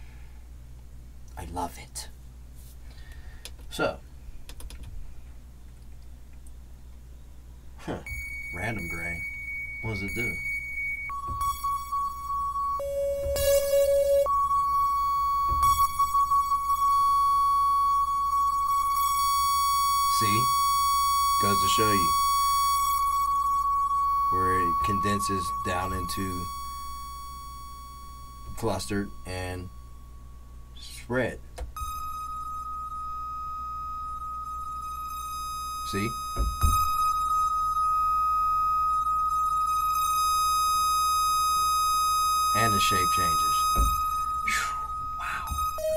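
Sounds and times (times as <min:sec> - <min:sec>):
synthesizer high-pitched tone: 0:08.1 - 0:27.2
short knock: 0:36.4 - 0:37.0.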